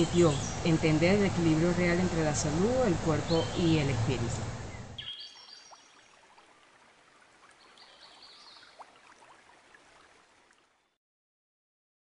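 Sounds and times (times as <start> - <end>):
steady low hiss: 0.0 - 5.7.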